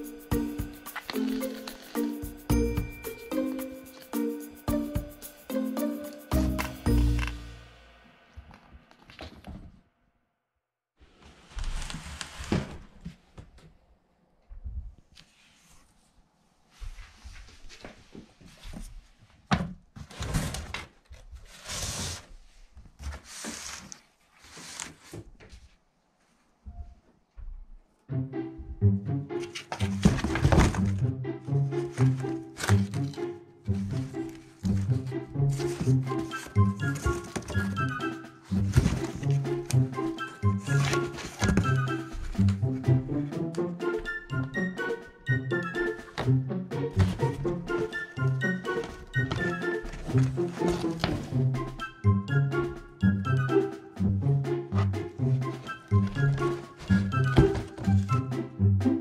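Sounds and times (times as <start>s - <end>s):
background music with steady beat: 0.0s - 8.3s, 28.1s - 32.6s, 33.2s - 59.0s
cardboard rustling and scraping: 0.9s - 2.1s, 11.1s - 13.2s, 20.0s - 25.8s, 29.4s - 31.0s, 33.9s - 37.8s, 38.5s - 39.8s, 40.6s - 42.6s, 48.8s - 51.4s.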